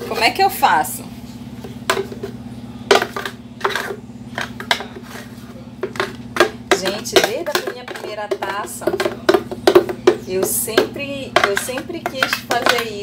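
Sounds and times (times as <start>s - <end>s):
dishes and utensils clinking: 1.6s - 13.0s.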